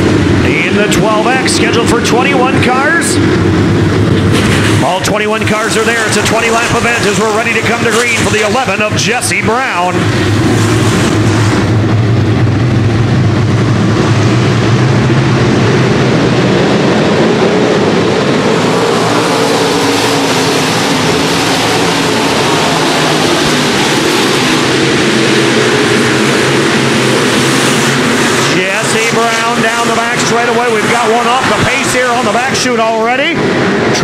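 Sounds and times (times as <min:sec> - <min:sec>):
racing cars at full throttle: 0:00.0 - 0:34.0.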